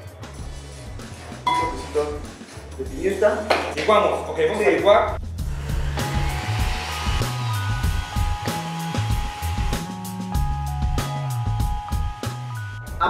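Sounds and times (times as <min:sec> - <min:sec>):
blender running: 0:05.4 - 0:10.8.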